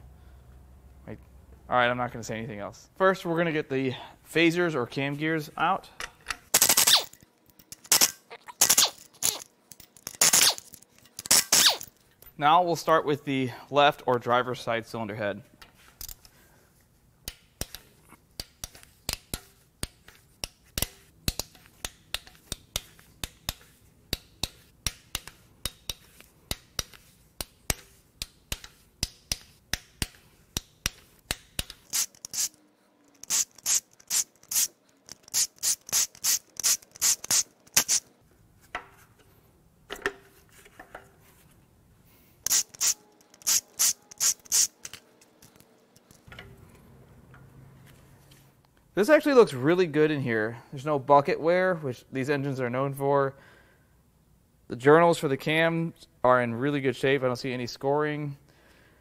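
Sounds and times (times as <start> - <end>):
hand ratchet clicking: 6.2 - 11.9, 17.2 - 38.1, 42.4 - 46.2
impact driver spinning bolts: 42.5 - 45.0.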